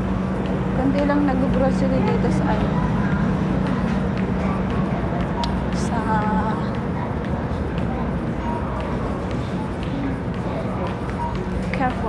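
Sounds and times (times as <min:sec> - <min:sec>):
indistinct voices of shoppers: 0:00.0 - 0:12.0
steady low rumble: 0:00.0 - 0:12.0.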